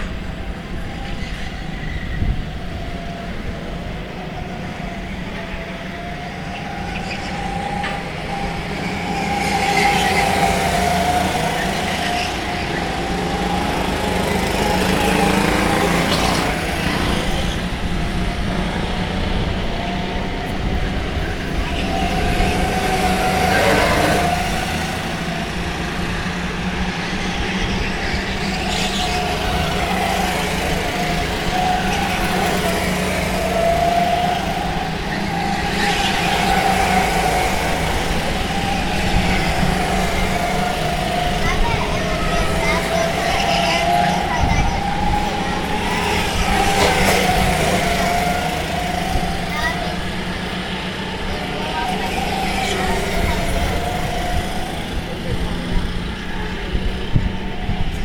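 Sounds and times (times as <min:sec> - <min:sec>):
go-kart engines buzzing: 0:00.0 - 0:58.0.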